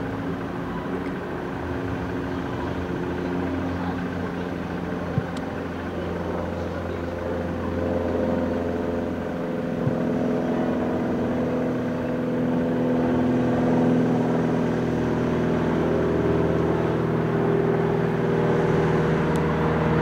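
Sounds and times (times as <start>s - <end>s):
van engine running: 0.0s - 20.0s.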